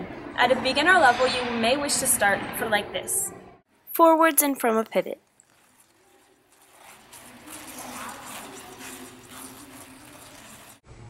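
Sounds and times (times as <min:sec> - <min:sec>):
hollow rink background noise: 0:00.0 - 0:11.0
skate blades scraping on ice: 0:05.5 - 0:10.8.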